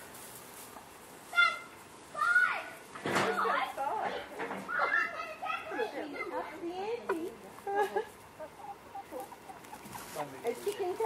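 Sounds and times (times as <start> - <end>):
hens clucking: 3.5 - 11.0.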